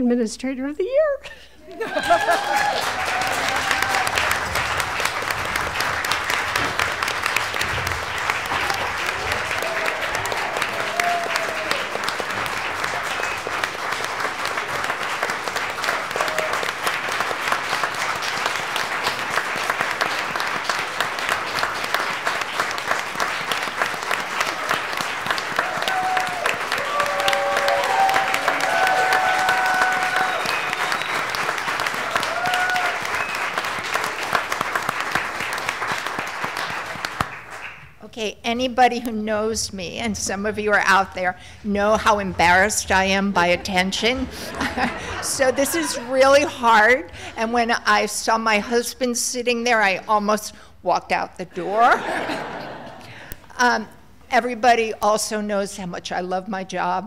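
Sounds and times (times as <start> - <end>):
people applauding: 1.8 - 38.0, 44.0 - 47.6.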